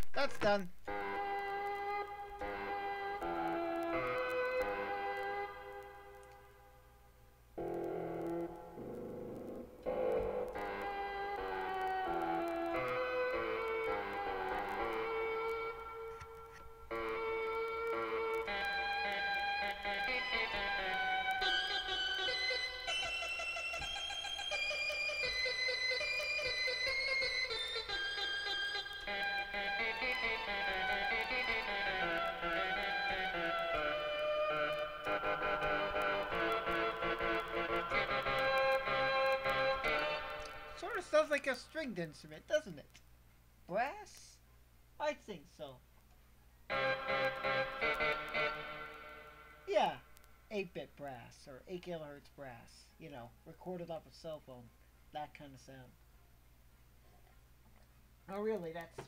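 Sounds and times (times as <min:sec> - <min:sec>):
keyboard playing slow melody: 0:00.8 - 0:40.9, 0:46.7 - 0:50.2.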